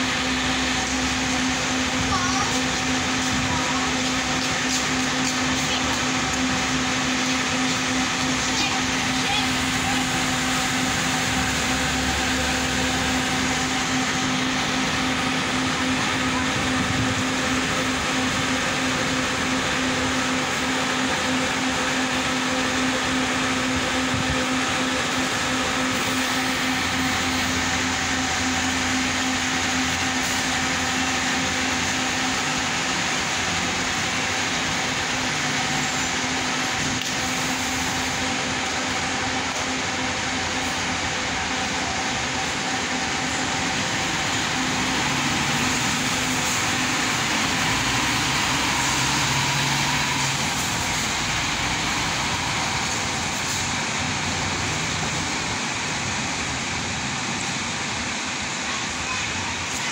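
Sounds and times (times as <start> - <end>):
diesel coach idling: 0.0 - 59.9.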